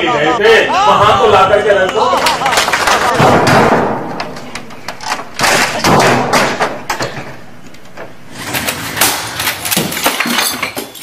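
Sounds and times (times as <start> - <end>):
keyboard smashing against monitor: 5.0 - 7.1, 8.4 - 11.0.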